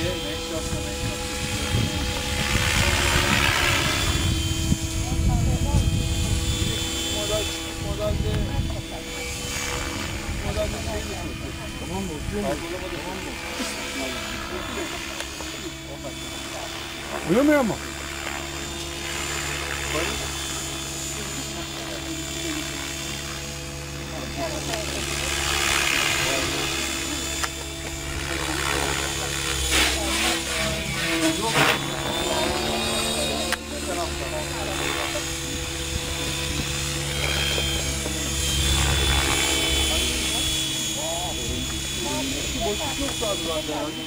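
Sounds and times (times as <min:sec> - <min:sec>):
people talking: 0:00.0 - 0:03.6, 0:05.0 - 0:17.8, 0:19.8 - 0:20.4, 0:21.1 - 0:22.9, 0:24.0 - 0:27.7, 0:28.3 - 0:44.0
helicopter motor and rotor whine: 0:00.0 - 0:44.0.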